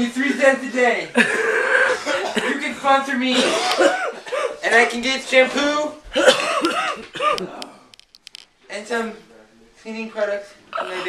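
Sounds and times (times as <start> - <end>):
man coughing: 1.2 - 4.7, 6.1 - 7.6
sharp clicks: 7.3 - 8.5.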